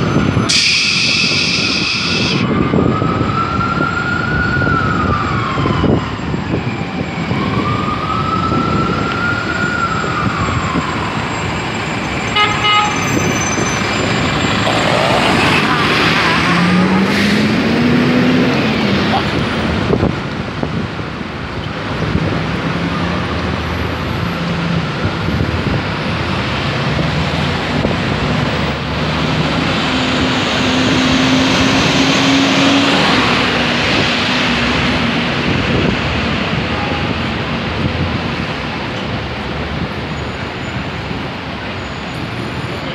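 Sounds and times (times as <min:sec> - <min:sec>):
street traffic: 0:00.0 - 0:42.9
siren winding down: 0:00.5 - 0:12.3
car horn toot: 0:12.4 - 0:13.1
engine speeding up: 0:14.1 - 0:20.0.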